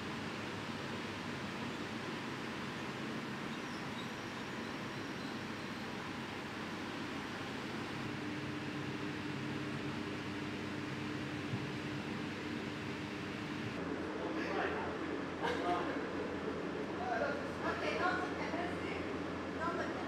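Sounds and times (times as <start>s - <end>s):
ventilation fans hissing: 0.0s - 20.0s
steady low hum: 5.5s - 14.2s.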